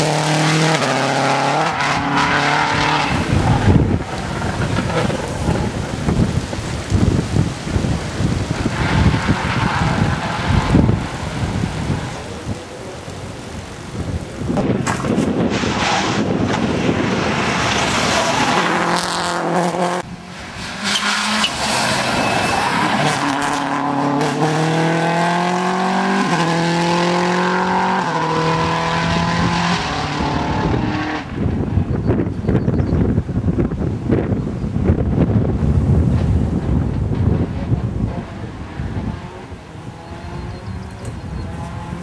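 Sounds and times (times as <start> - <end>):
rally car engine revving: 0.0 - 6.1, 14.6 - 31.4, 36.8 - 42.0
wind buffeting microphone: 1.6 - 19.1, 22.4 - 42.0.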